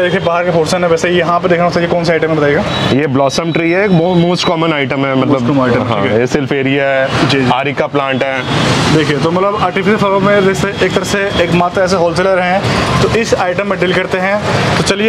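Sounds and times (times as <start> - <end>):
people talking: 0.0 - 15.0
road traffic hum: 0.0 - 15.0.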